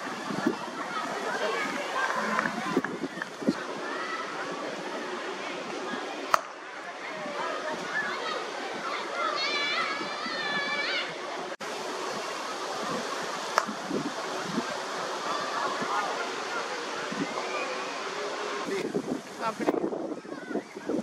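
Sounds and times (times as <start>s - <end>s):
wind on microphone: 0.0s - 3.9s, 12.0s - 16.1s, 16.9s - 17.6s, 18.6s - 21.0s.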